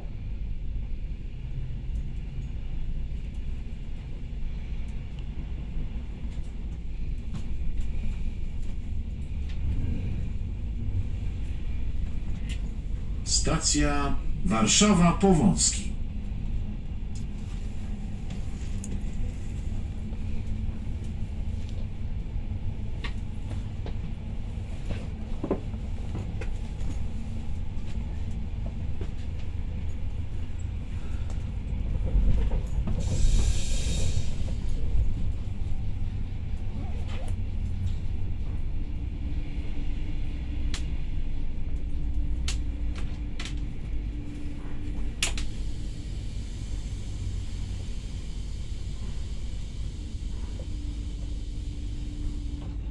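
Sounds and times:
train wheels rumbling: 0:00.0 - 0:52.9.

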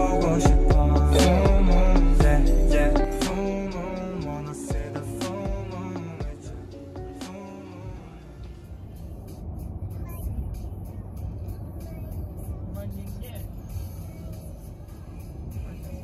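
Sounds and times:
car road and engine rumble: 0:00.0 - 0:16.0.

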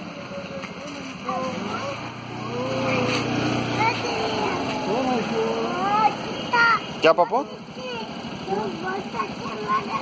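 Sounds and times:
scooter engine running: 0:00.0 - 0:10.0.

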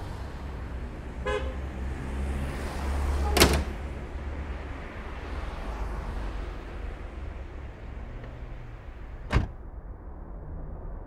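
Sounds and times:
car horn beep: 0:01.2 - 0:01.6
low outdoor rumble: 0:03.6 - 0:11.0.

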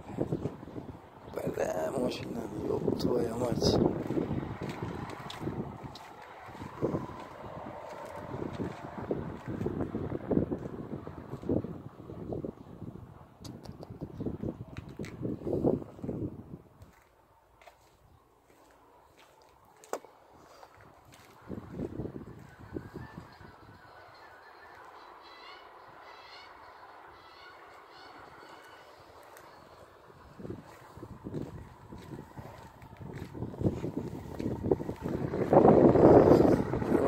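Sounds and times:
wind buffeting microphone: 0:00.0 - 0:17.0, 0:20.7 - 0:24.0, 0:29.2 - 0:37.0
faint outdoor background noise: 0:00.0 - 0:37.0.

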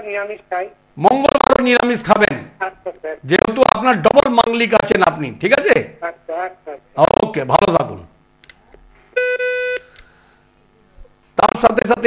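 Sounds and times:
faint click: 0:08.4 - 0:08.6
electronic telephone beep: 0:09.2 - 0:09.9.

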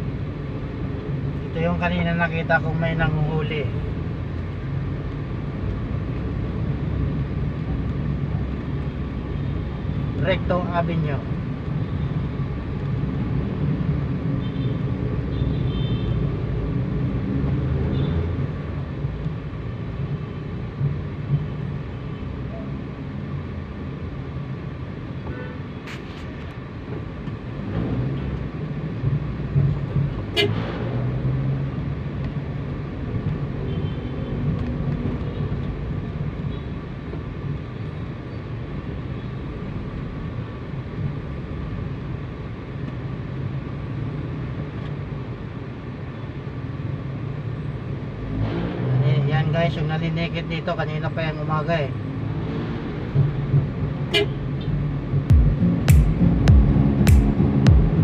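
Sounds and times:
street traffic engine hum: 0:00.0 - 0:58.0.

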